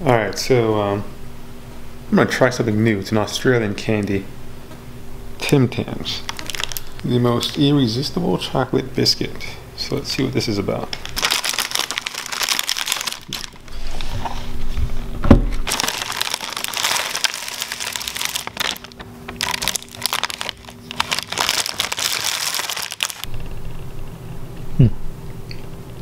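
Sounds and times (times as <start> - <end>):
plastic wrapper crinkling: 5.4 - 7.8, 10.8 - 13.9, 15.6 - 23.3.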